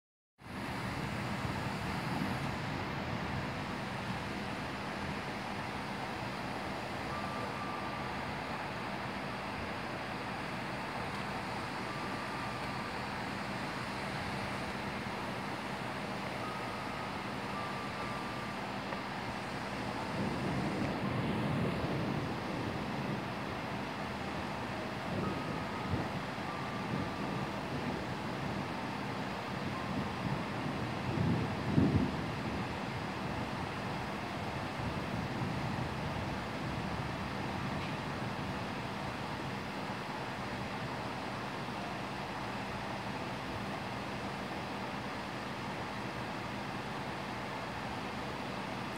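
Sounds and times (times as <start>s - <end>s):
heavy rain falling: 0.5s - 48.9s
low thunder rumbles: 19.9s - 23.8s, 29.9s - 32.6s.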